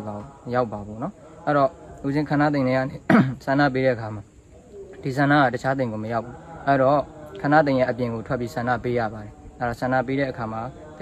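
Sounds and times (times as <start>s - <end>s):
man speaking calmly: 0.0s - 11.0s.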